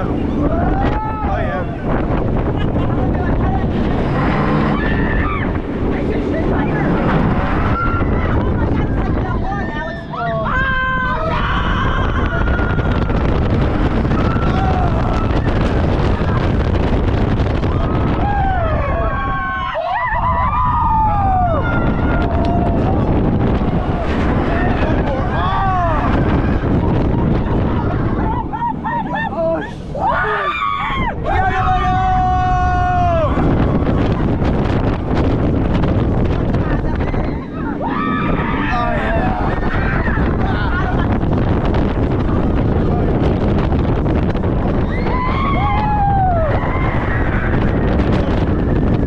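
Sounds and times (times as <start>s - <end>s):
roller coaster running: 0.0s - 49.0s
wind rushing over microphone: 0.0s - 49.0s
riders screaming: 4.0s - 5.6s, 9.9s - 13.4s, 28.2s - 33.8s, 36.9s - 41.0s, 44.8s - 48.4s.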